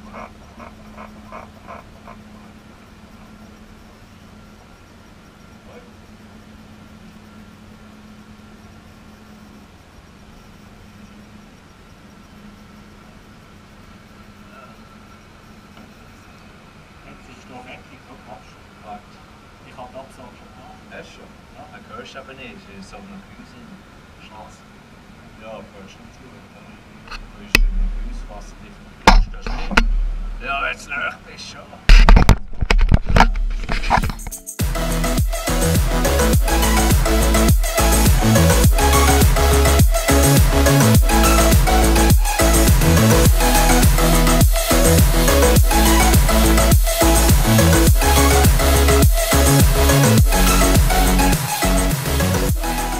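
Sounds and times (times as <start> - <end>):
steady low hum: 0.0 - 52.9
faint men's voices: 5.5 - 7.1, 14.2 - 31.9.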